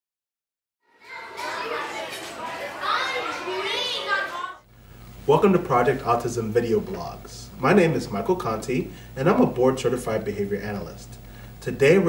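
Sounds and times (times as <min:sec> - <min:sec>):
children chattering and calling out: 0:00.8 - 0:04.7.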